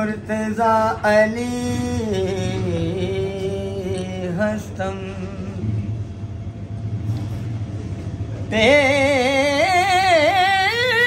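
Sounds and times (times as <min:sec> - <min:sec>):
faint hum: 0:00.0 - 0:11.0
low background rumble: 0:00.0 - 0:11.0.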